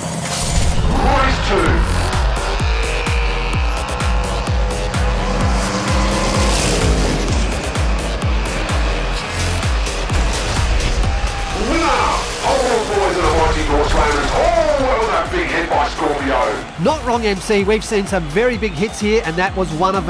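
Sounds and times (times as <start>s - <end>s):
background music: 0.0s - 20.0s
race car engines revving: 0.0s - 20.0s.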